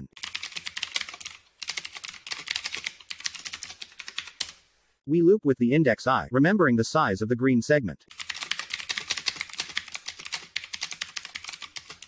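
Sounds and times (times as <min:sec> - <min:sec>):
keyboard typing: 0:00.1 - 0:04.7, 0:08.1 - 0:12.0.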